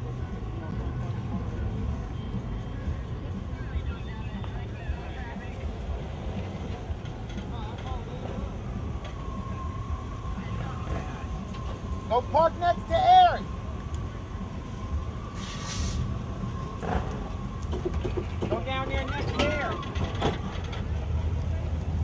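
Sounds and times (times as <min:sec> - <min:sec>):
cars rumbling slowly past: 0:00.0 - 0:22.0.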